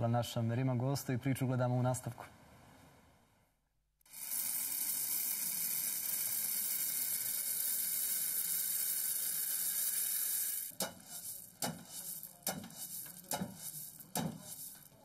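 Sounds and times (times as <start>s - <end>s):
steady hiss: 4.1s - 15.0s
pestle knocking in stone mortar: 10.7s - 14.6s.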